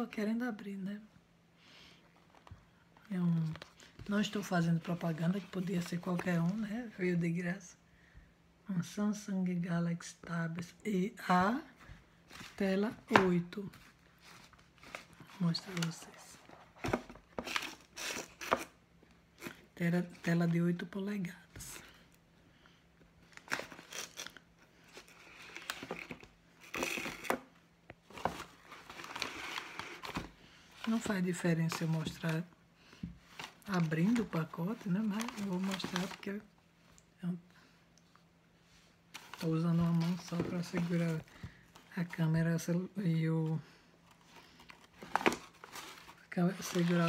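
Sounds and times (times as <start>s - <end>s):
packaging crinkling and crackling: 23.2s - 32.5s, 33.3s - 36.5s.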